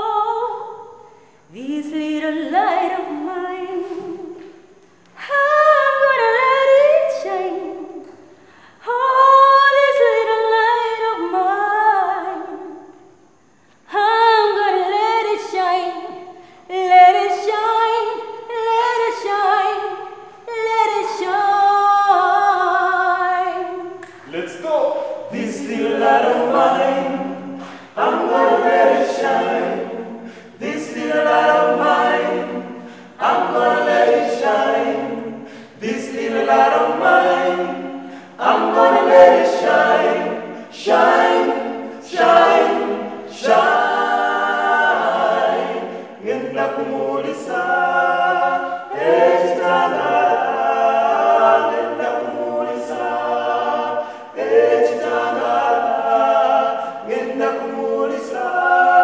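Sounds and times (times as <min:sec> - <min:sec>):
a cappella group singing in harmony: 0:00.0 - 0:59.0.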